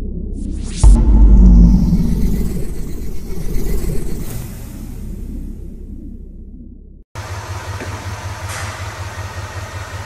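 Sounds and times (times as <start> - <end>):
deep boom with low rumble: 0.0 - 7.1.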